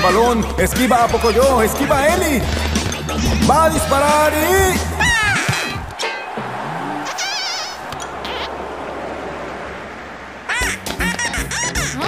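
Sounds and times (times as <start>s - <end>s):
background music: 0.0s - 6.6s
falling glide effect: 6.6s - 10.8s
cartoon duck quacking: 7.0s - 8.5s, 10.5s - 12.0s.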